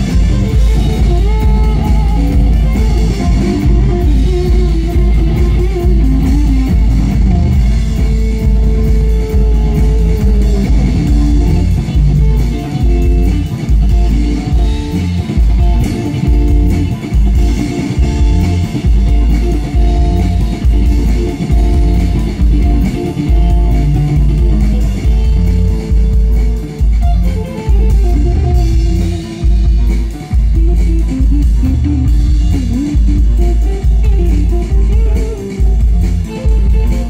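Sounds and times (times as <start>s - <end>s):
deep sustained bass notes: 0.0s - 37.0s
drum kit: 0.0s - 37.0s
electric guitar: 0.0s - 37.0s.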